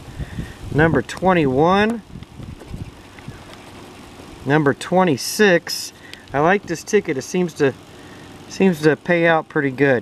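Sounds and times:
low outdoor rumble: 0:00.0 - 0:10.0
small irregular ticks: 0:01.1 - 0:04.3
wrench scraping lottery ticket: 0:02.6 - 0:04.3.

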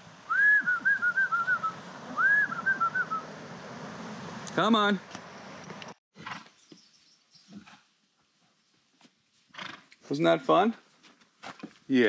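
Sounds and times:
person whistling: 0:00.3 - 0:03.2.

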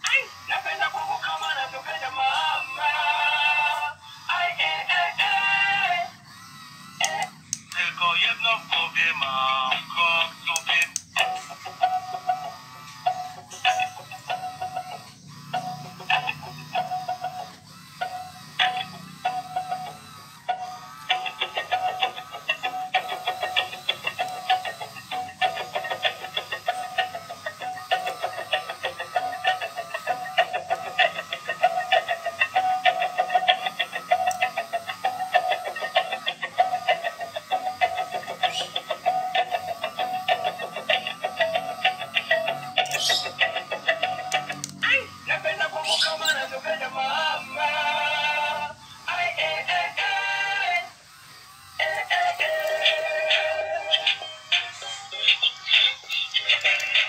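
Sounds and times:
toy speaker playing instrumental tune: 0:00.0 - 0:57.0.

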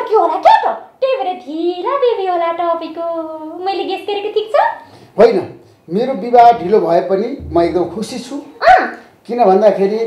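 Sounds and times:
voices in conversation: 0:00.0 - 0:10.0.

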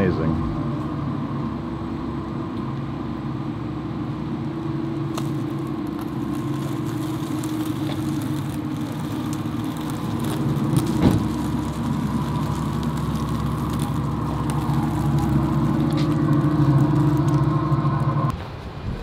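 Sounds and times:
electric car low hum: 0:00.0 - 0:18.3.

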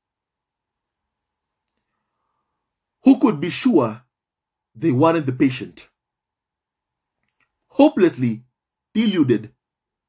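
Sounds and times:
faint click: 0:01.6 - 0:02.2, 0:07.2 - 0:07.6.

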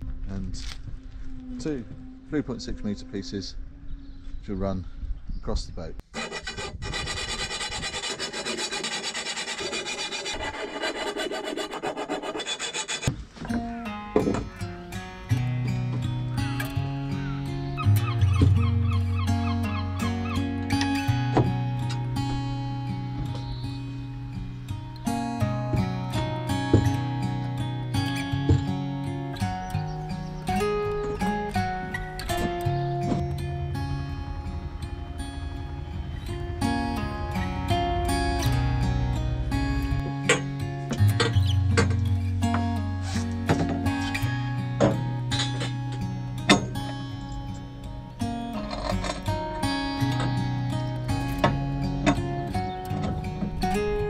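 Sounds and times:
hand tool rasping on steel tube: 0:06.1 - 0:13.1
instrumental guitar and bass music: 0:13.1 - 0:54.0.

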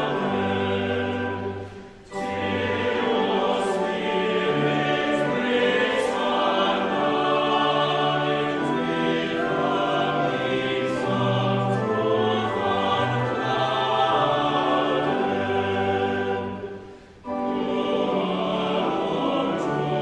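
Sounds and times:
choir and congregation singing hymn: 0:00.0 - 0:20.0
pipe organ chords: 0:00.0 - 0:20.0.

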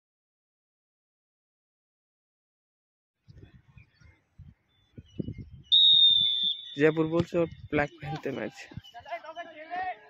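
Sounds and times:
referee's whistle blast: 0:05.7 - 0:07.2.

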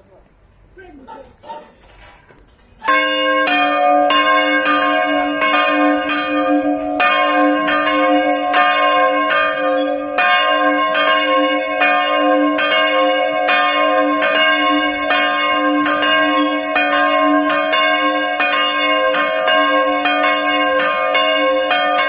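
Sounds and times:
church bells pealing: 0:02.8 - 0:22.0.

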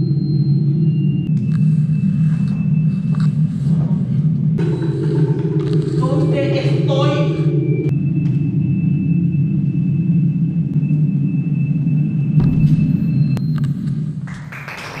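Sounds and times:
low rumbling drone: 0:00.0 - 0:15.0.

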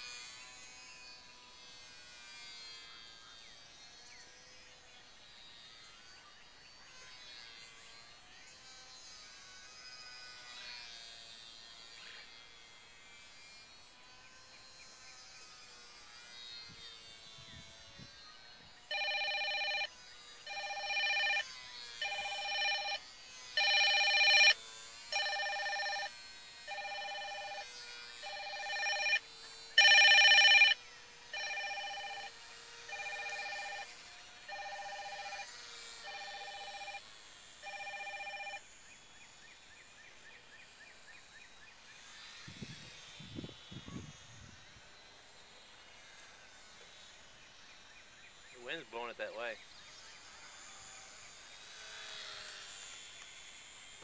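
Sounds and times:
phone ringtone: 0:18.9 - 0:19.9, 0:20.5 - 0:21.4, 0:22.0 - 0:23.0, 0:23.6 - 0:26.1, 0:26.7 - 0:29.2, 0:29.8 - 0:32.3, 0:32.9 - 0:33.9, 0:34.5 - 0:37.0, 0:37.6 - 0:38.6.

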